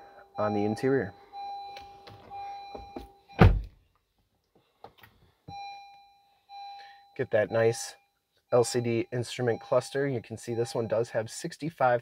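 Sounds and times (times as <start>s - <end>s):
electronic dashboard chime: 0.0s - 3.5s, 5.5s - 11.4s
car door shutting: 2.1s - 3.7s.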